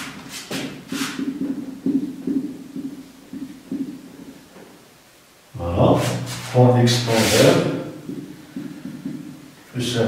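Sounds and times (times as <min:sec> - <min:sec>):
marker knocking on whiteboard: 0:00.5 - 0:04.4, 0:08.0 - 0:09.4.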